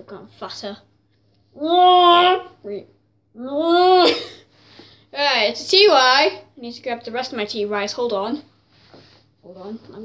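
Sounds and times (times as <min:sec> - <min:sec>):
girl vocalizing: 0:01.6 - 0:04.4
girl laughing: 0:03.7 - 0:04.5.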